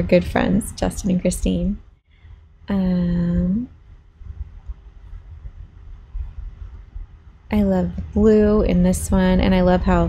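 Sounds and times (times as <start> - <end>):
faint steady hum: 0.0 - 10.0
low uneven rumble: 0.0 - 10.0.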